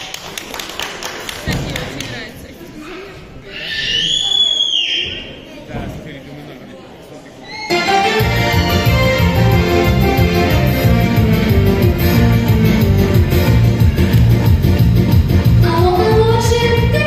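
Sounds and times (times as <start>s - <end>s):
children's voices in a hall: 0.0s - 8.0s, 15.5s - 17.0s
high falling squeal: 3.6s - 5.4s
backing track with accordion: 7.7s - 16.4s.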